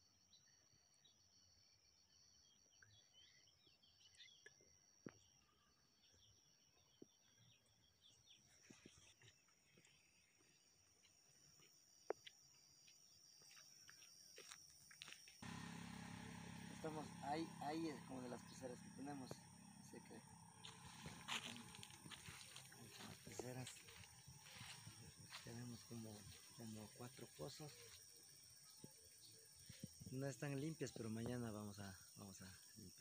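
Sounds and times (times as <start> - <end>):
faint bird chirps: 0.0 - 10.7, 15.5 - 33.0
outdoor background noise: 0.0 - 33.0
high-pitched thin drone: 15.9 - 26.8.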